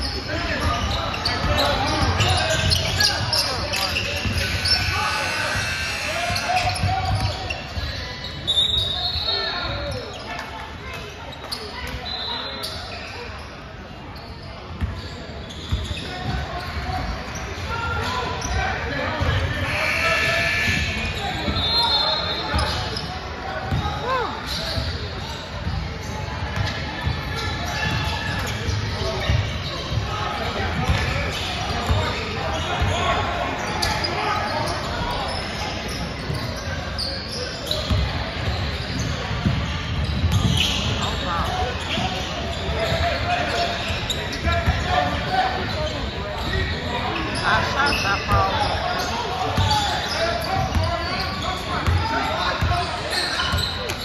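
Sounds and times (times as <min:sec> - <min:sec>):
chatter echoing in a gym: 0:00.0 - 0:54.0.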